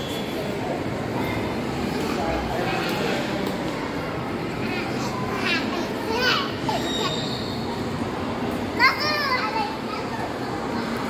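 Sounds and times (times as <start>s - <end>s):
children chattering: 0.0s - 11.0s
large hall background: 0.0s - 11.0s.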